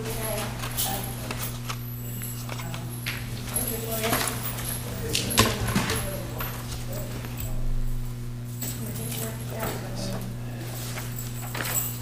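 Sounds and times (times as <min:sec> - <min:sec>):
faint voices: 0:00.0 - 0:07.9, 0:08.7 - 0:11.0
steady low hum: 0:00.0 - 0:12.0.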